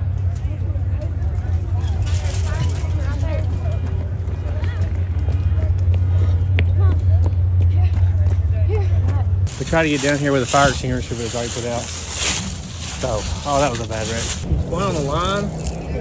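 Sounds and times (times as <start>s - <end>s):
distant indistinct voices: 0.0s - 16.0s
steady low rumble: 0.0s - 16.0s.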